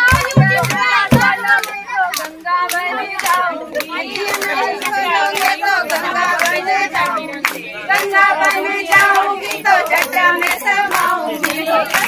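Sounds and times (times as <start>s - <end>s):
hand-clapping: 0.0s - 12.0s
women singing a folk song: 0.0s - 12.0s.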